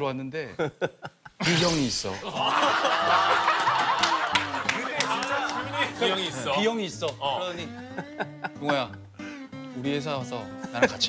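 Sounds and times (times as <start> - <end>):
men laughing loudly: 0.6 - 6.7, 7.7 - 9.1.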